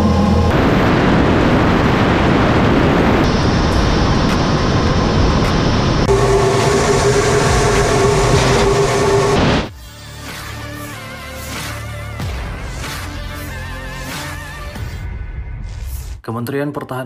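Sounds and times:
jet engine roar: 0.0s - 9.7s
steady whine: 0.0s - 9.7s.

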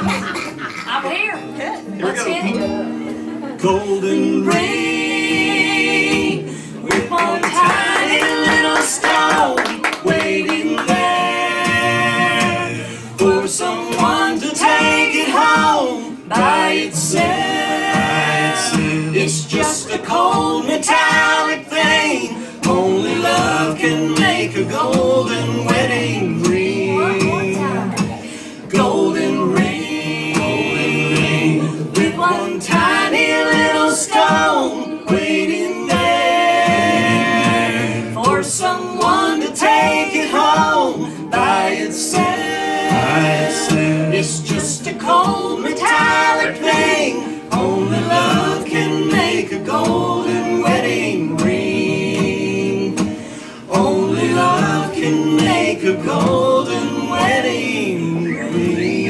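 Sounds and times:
strummed acoustic guitars: 0.0s - 59.0s
people singing in harmony: 3.4s - 59.0s.

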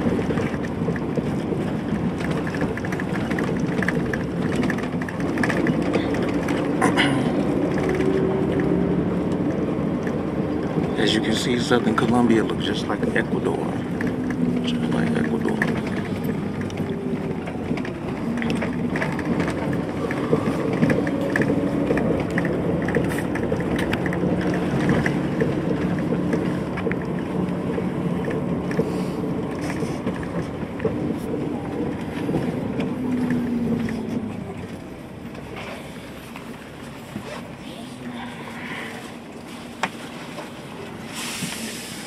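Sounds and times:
bus engine and road noise: 0.0s - 42.0s.

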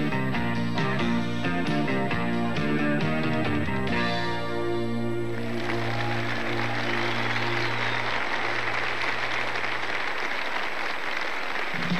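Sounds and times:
audience applause: 5.3s - 11.9s.

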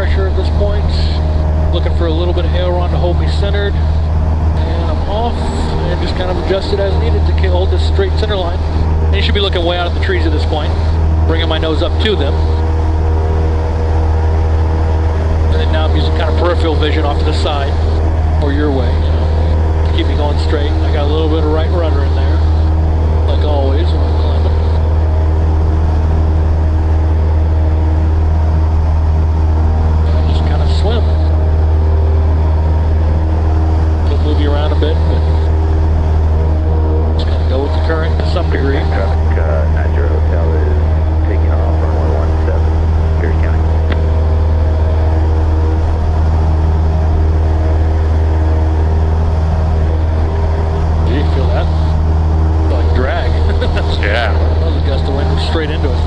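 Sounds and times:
aircraft engine and propeller droning: 0.0s - 56.0s.

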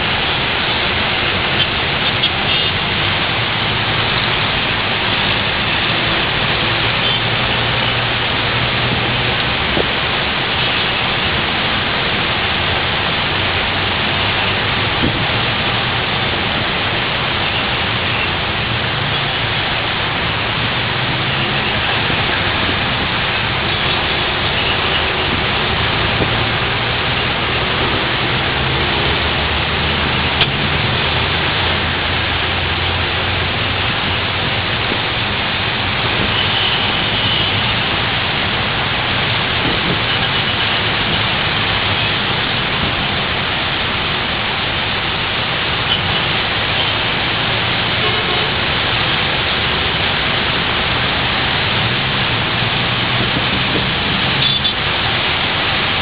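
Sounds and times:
heavy rain: 0.0s - 56.0s
traffic on wet road: 0.0s - 56.0s.

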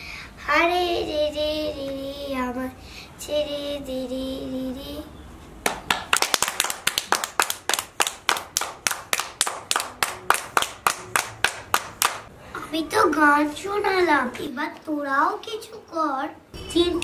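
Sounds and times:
hands clapping: 5.6s - 12.3s
child's voice: 12.6s - 17.0s.

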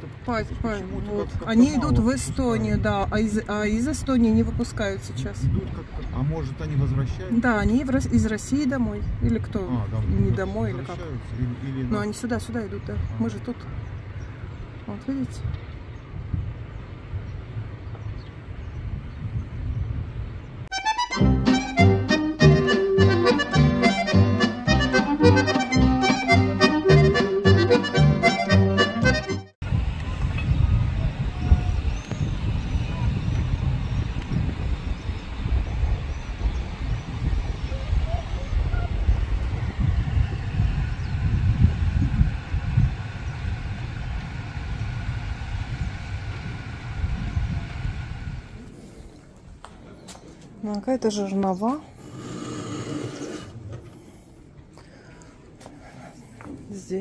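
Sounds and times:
wind buffeting microphone: 0.0s - 20.8s, 29.1s - 57.0s
rhythmic instrumental music: 20.7s - 29.6s.

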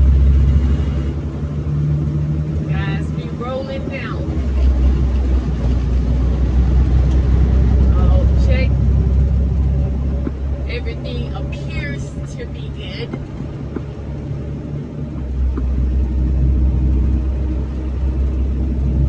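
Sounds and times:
diesel truck engine drone: 0.0s - 19.0s.

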